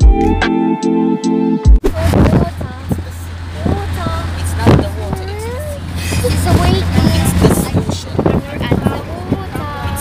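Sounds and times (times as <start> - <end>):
road rumble inside car: 1.8 - 10.0
people chattering and calling out: 1.9 - 10.0.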